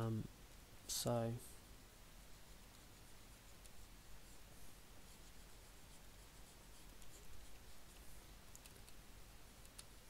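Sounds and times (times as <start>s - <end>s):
low room hiss: 0.0s - 10.0s
stylus scratching on tablet: 2.2s - 9.0s.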